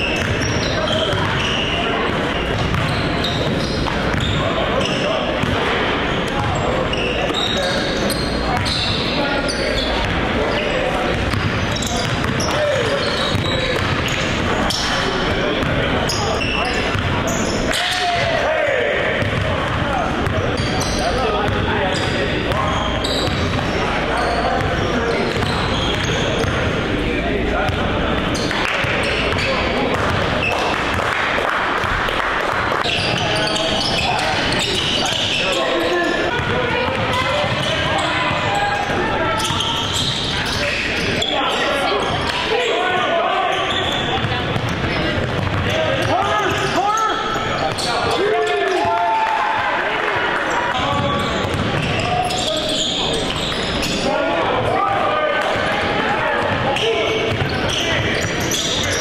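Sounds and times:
players' voices and shouts: 0.0s - 59.0s.

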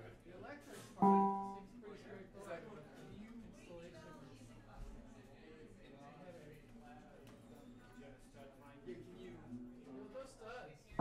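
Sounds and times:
low room chatter: 0.0s - 11.0s
plucked guitar string note: 1.0s - 1.6s.

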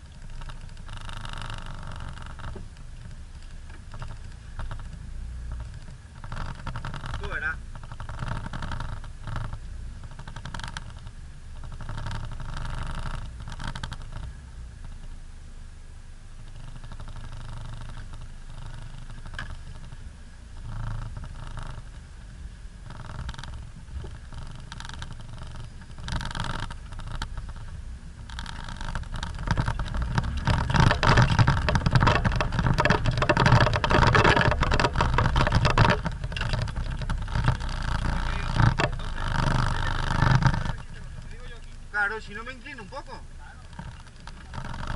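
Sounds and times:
off-road vehicle engine running: 0.0s - 44.9s
vehicle body rattling and knocking: 22.9s - 44.9s.

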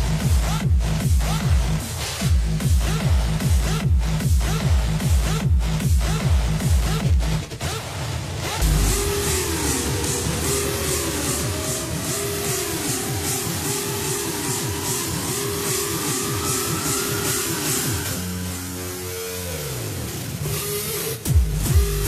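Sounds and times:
repeating electronic beat: 0.0s - 22.0s
synth riser: 6.0s - 22.0s.

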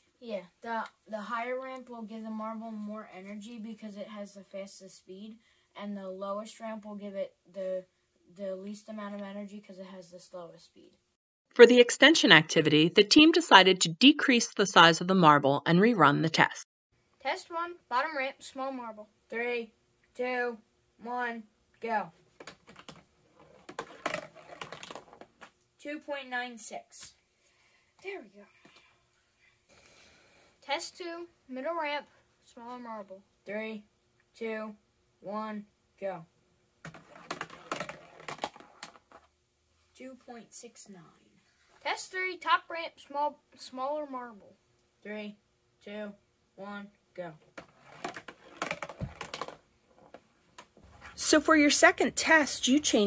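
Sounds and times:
marble rolling down a ramp: 22.4s - 25.5s, 36.8s - 39.3s, 47.6s - 50.2s.

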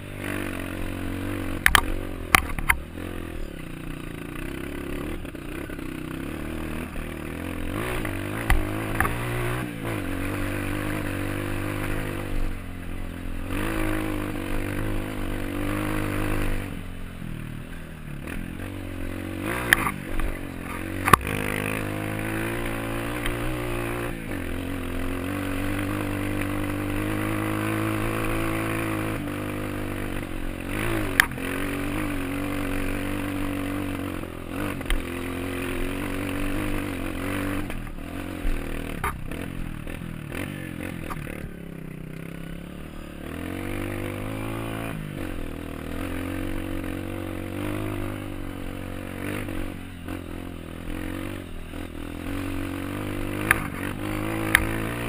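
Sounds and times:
dirt bike engine running: 0.0s - 55.0s.

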